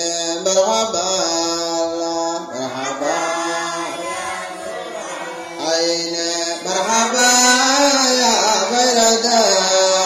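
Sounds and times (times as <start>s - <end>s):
man chanting devotional song: 0.0s - 10.0s.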